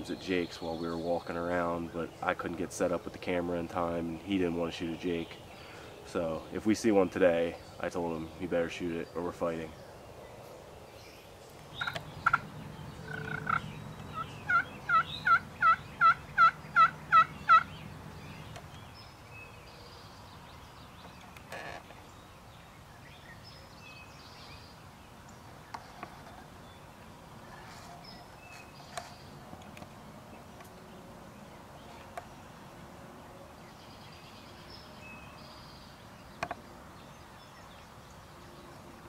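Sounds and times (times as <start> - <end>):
songbird chirps: 0.0 - 39.0
turkey pot call yelps: 11.8 - 17.8.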